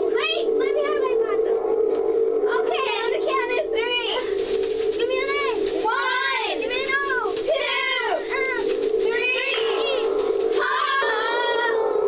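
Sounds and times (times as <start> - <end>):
steady held hum: 0.0 - 12.0
children's voices swooping in pitch: 2.5 - 12.0.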